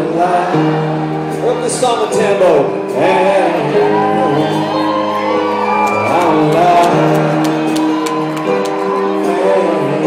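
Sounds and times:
live country band playing: 0.0 - 10.0
person singing: 0.0 - 10.0
audience shouting and whooping: 3.6 - 10.0.

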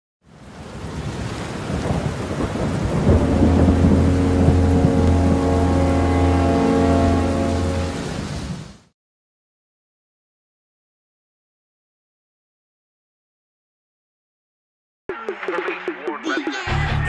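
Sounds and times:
rain: 0.2 - 8.9
rumbling thunder: 0.8 - 8.6
low droning synth tone: 3.2 - 8.3.

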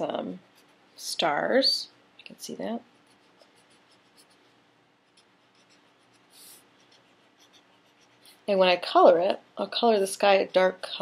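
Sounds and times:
marker scratching on paper: 2.9 - 8.4.

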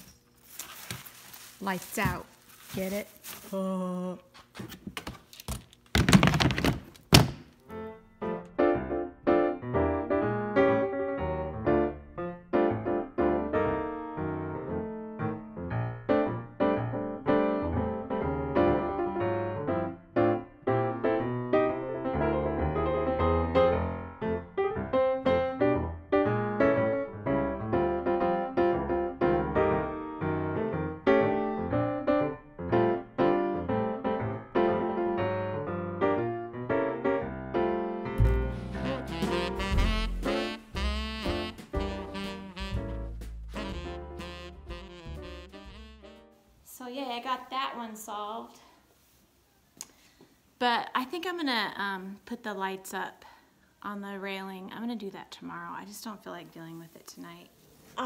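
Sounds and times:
rustling: 0.0 - 3.7
piano background music: 7.6 - 46.5.

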